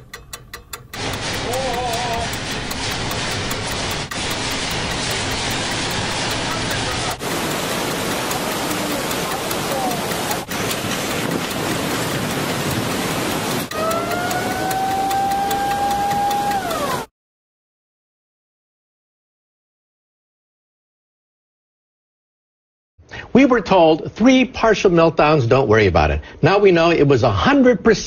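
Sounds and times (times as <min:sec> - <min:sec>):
rushing rattling noise: 0:00.9 - 0:17.1
steady tone sliding down: 0:01.0 - 0:17.1
voices: 0:06.1 - 0:10.5.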